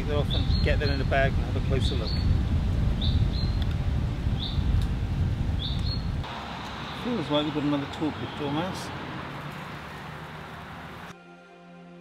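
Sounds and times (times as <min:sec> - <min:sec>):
steady low rumble: 0:00.0 - 0:07.0
small bird chirping: 0:03.0 - 0:03.7, 0:04.4 - 0:04.7, 0:05.6 - 0:07.1.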